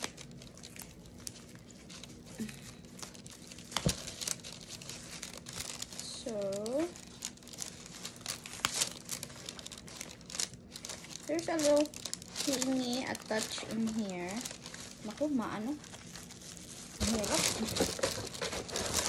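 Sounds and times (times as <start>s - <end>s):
paper wrapping crinkling: 0.0s - 19.0s.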